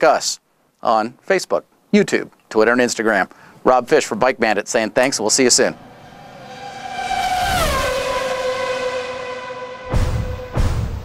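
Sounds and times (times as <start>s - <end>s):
high whining engine: 5.3s - 11.0s.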